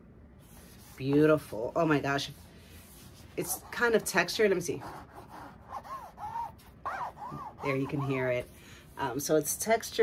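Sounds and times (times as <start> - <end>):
fingers rubbing book cover: 2.2 - 9.2.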